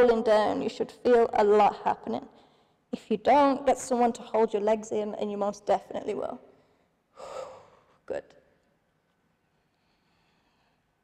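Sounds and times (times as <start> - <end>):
woman breathing out heavily: 7.2 - 8.0.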